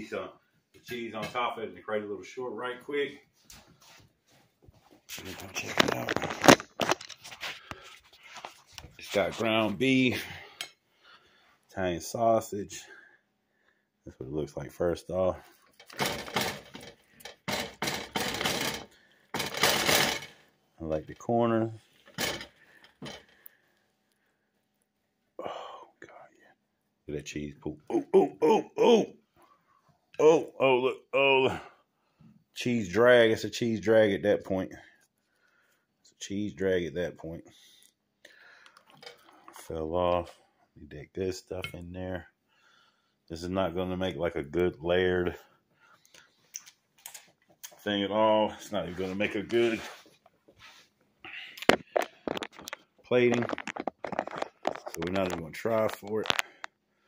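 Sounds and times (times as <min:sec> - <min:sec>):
man whispering: 0:25.4 - 0:26.6.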